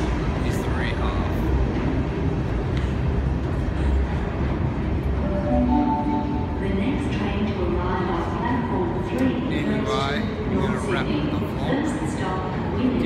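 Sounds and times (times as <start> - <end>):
electric train rumbling: 0.0 - 13.0.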